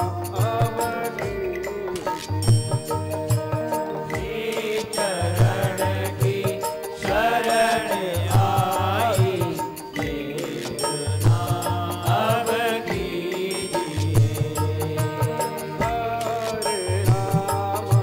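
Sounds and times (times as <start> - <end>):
low drum beat: 0.0 - 18.0
person singing devotional chant: 0.0 - 18.0
sustained tones: 0.0 - 18.0.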